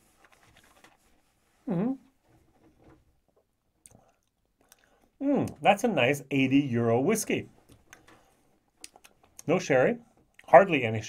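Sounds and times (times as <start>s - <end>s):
man humming hmm: 1.6s - 2.1s.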